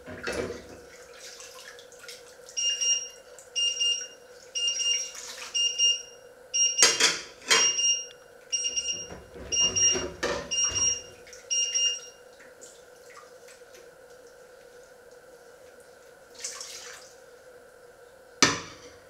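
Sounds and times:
electronic alarm beeping: 2.6s - 12.2s.

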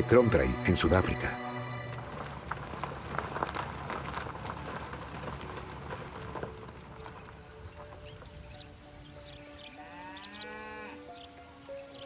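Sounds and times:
soft background music: 0.0s - 2.4s, 4.6s - 12.0s
cow mooing: 9.3s - 11.2s.

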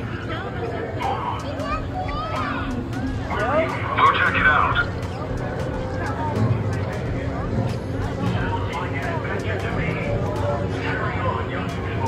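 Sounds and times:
background murmur: 0.0s - 12.0s.

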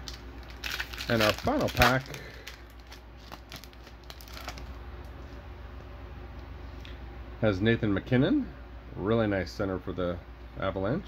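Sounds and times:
cards rustling together: 0.0s - 4.8s
wrapper crinkling: 0.0s - 4.8s.

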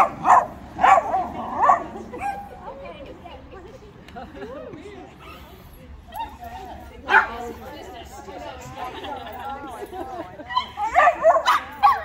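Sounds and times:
small dogs yipping: 10.6s - 12.0s.

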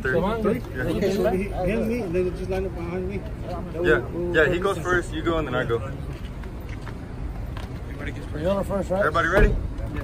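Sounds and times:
background noise of group: 0.0s - 10.0s.

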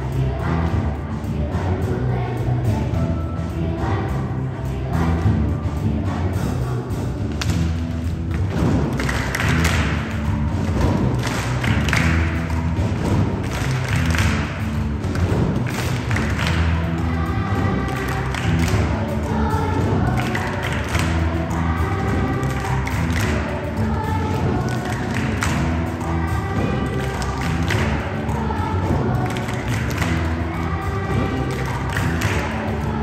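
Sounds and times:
children's choir singing: 0.0s - 33.0s
heavy bass thuds: 5.0s - 33.0s.

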